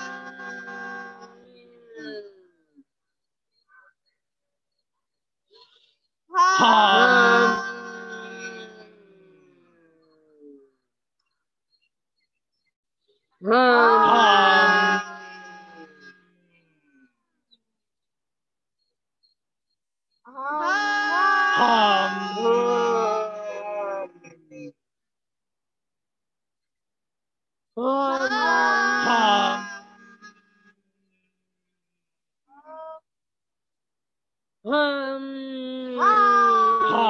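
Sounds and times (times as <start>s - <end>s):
man humming a long steady note: 0.0s - 2.6s, 6.6s - 10.6s, 14.0s - 16.4s, 21.0s - 24.7s.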